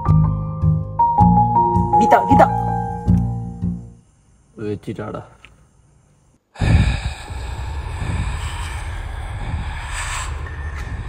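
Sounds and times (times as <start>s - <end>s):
steady hiss: 3.9s - 11.0s
heavy low rumble: 6.6s - 11.0s.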